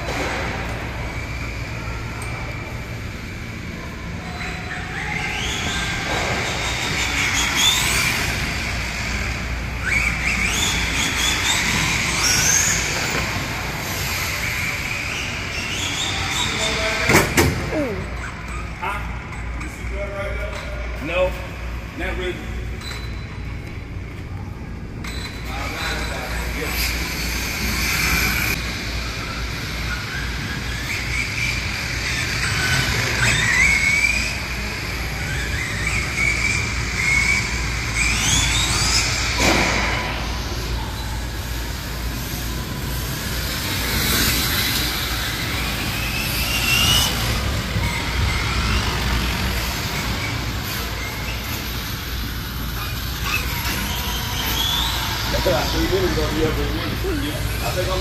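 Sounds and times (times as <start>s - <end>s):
electric toy car motor whining: 4.2s - 16.8s, 25.5s - 58.0s.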